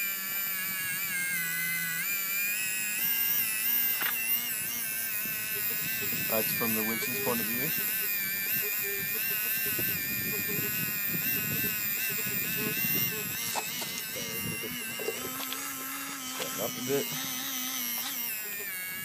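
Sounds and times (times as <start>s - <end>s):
small electric winch motor whining: 0.0s - 19.0s.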